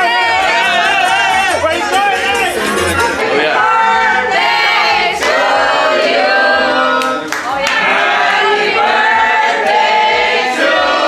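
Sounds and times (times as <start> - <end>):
group singing a birthday song: 0.0 - 11.0.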